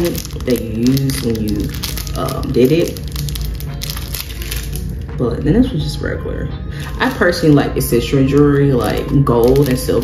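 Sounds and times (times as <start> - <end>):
crackling handling noise: 0.0 - 5.2, 8.3 - 10.0
background music: 0.0 - 10.0.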